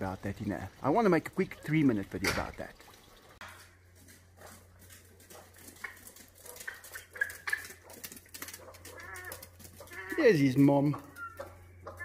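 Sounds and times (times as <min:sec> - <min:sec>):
bird feet clicking on tiles: 0:03.5 - 0:12.0.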